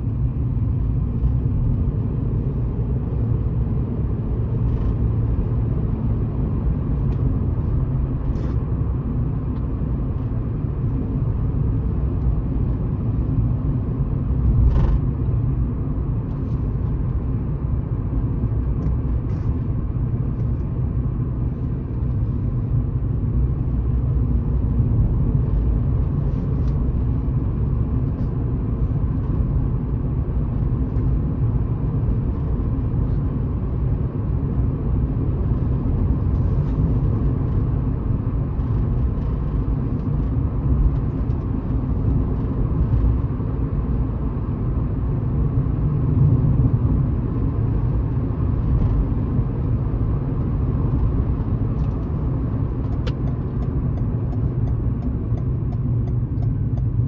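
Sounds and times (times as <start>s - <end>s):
car tyres and engine rumbling: 0.0s - 57.0s.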